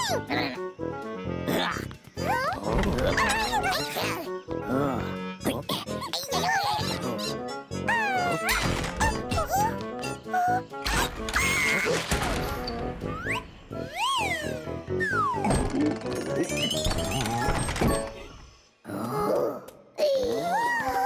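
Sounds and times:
cartoon background music: 0:00.0 - 0:21.0
high character squeaks: 0:13.1 - 0:18.4.

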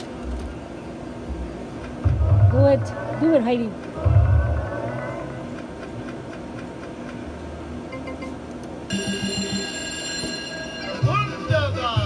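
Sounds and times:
slot machine reels ticking: 0:07.9 - 0:11.8
electronic jingle with pulsing beat: 0:07.9 - 0:12.0.

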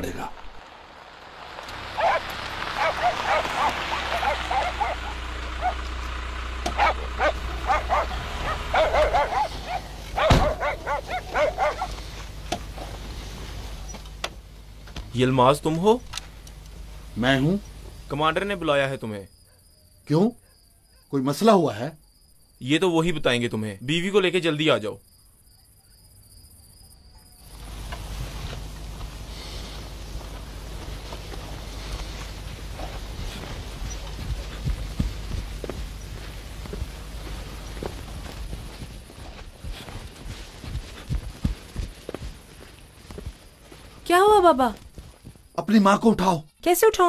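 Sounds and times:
outdoor noise with low rumble: 0:00.0 - 0:47.0
crickets chirping: 0:00.1 - 0:47.0
dogs barking in short yaps: 0:02.0 - 0:05.8, 0:06.7 - 0:12.0
low steady hum: 0:27.4 - 0:45.3.

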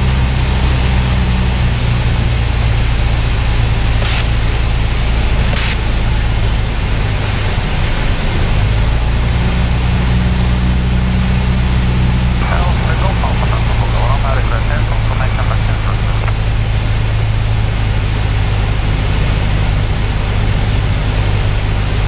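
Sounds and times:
airplane engine and propeller droning: 0:00.0 - 0:22.0.

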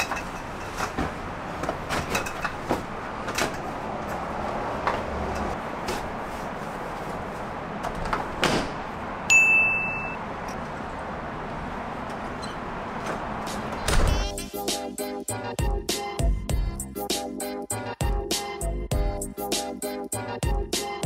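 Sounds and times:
short ringing ding: 0:09.3 - 0:10.2.

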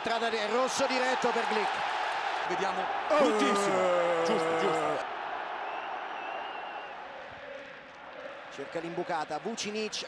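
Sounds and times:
stadium crowd noise: 0:00.0 - 0:10.0
faint high whistle: 0:05.7 - 0:06.9.

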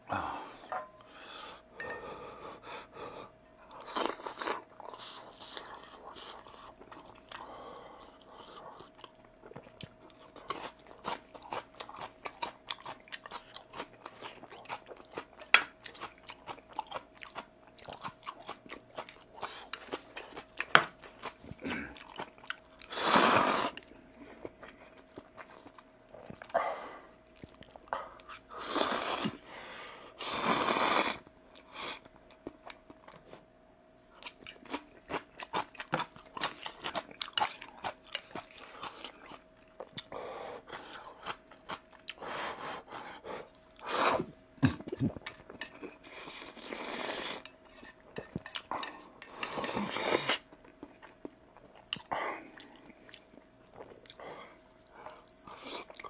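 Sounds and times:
wet chewing: 0:03.7 - 0:23.0, 0:23.7 - 0:26.6, 0:34.1 - 0:42.3, 0:42.9 - 0:56.0
loud noodle slurps: 0:22.9 - 0:23.8.

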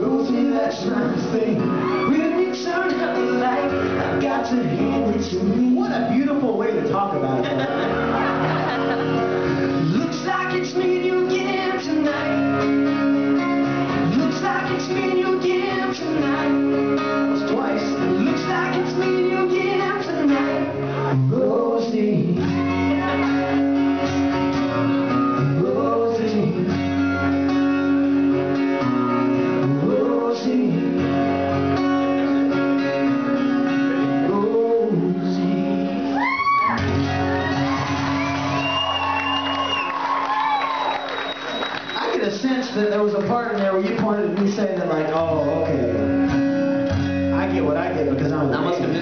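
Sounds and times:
person singing: 0:00.0 - 0:06.2, 0:09.7 - 0:26.9, 0:29.6 - 0:31.2, 0:32.2 - 0:36.6
acoustic guitars strumming: 0:00.0 - 0:40.2, 0:40.8 - 0:49.0
man singing long notes: 0:32.4 - 0:36.2.

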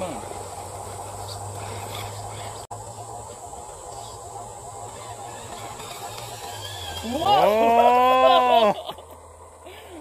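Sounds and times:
faint steady background noise: 0:00.0 - 0:10.0
man exclaiming ooh: 0:07.2 - 0:08.8.

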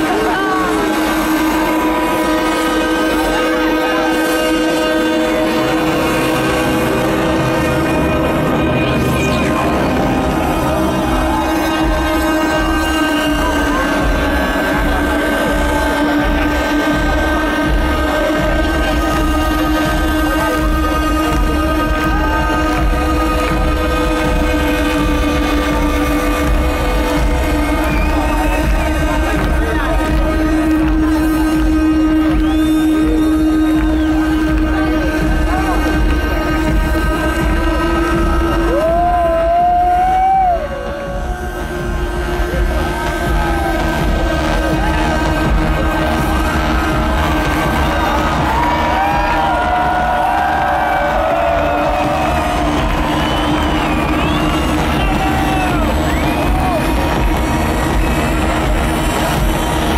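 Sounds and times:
crowd noise: 0:00.0 - 0:59.9
sustained electronic chord: 0:00.0 - 0:59.9.

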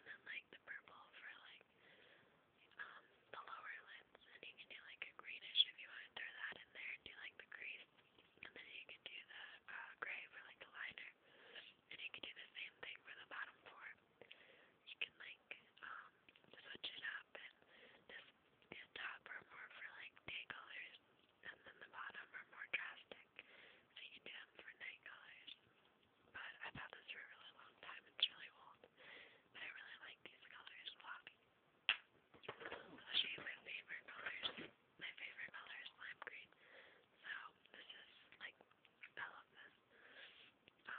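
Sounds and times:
person whispering: 0:00.0 - 0:01.7, 0:02.6 - 0:14.0, 0:14.8 - 0:23.4, 0:24.0 - 0:25.6, 0:26.3 - 0:31.4, 0:32.4 - 0:40.9.

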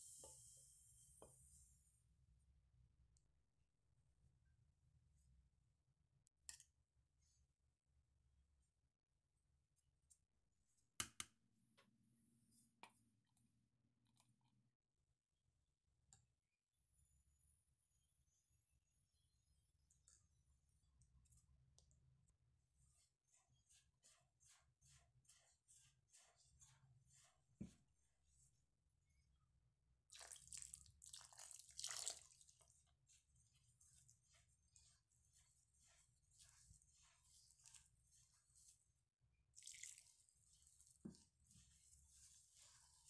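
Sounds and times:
fingers rubbing flour in a bowl: 0:19.2 - 0:43.0.

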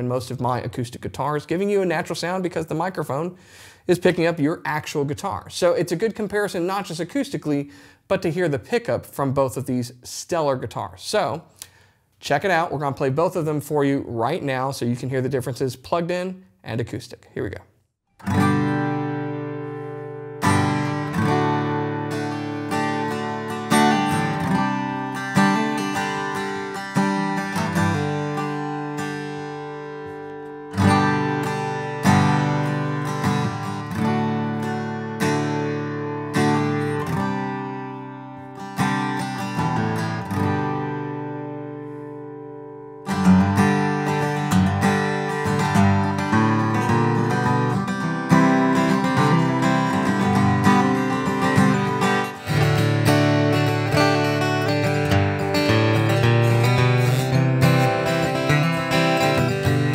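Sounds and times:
acoustic guitar chords strummed: 0:18.2 - 0:59.9.

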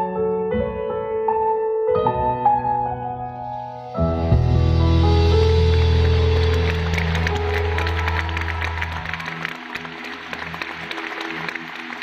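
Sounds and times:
audience applause and cheering: 0:05.1 - 0:12.0.

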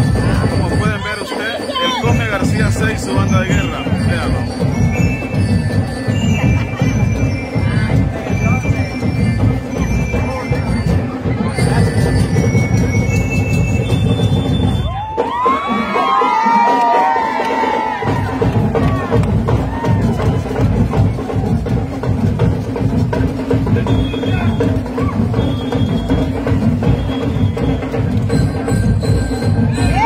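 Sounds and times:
crowd cheering and shouting: 0:00.0 - 0:30.0
marching band drums: 0:00.0 - 0:30.0.

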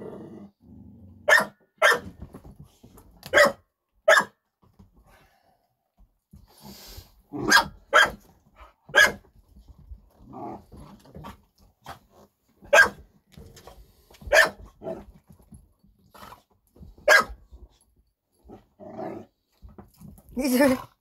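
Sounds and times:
dogs growling: 0:00.0 - 0:01.2, 0:10.1 - 0:11.3, 0:18.4 - 0:19.5
dogs barking: 0:01.3 - 0:02.1, 0:03.3 - 0:04.3, 0:07.4 - 0:08.2, 0:08.9 - 0:09.2, 0:12.7 - 0:13.0, 0:14.3 - 0:14.6, 0:17.0 - 0:17.4.

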